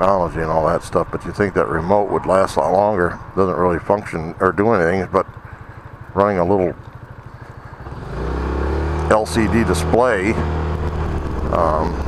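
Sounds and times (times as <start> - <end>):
scooter engine idling and revving: 0.0 - 12.0.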